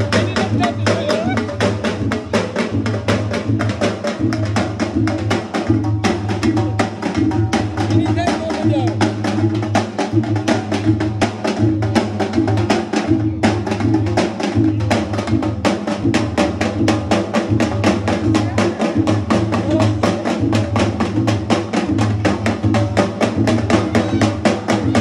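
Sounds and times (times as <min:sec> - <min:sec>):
voices singing: 0:00.0 - 0:01.9, 0:23.0 - 0:25.0
drum-led music: 0:00.0 - 0:25.0.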